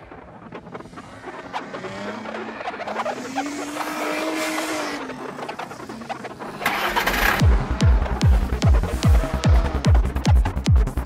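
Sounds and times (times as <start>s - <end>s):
rising and falling tone: 0.0s - 10.7s
engine-like sound effect: 0.0s - 11.0s
kick drum and rolling bass: 7.4s - 11.0s.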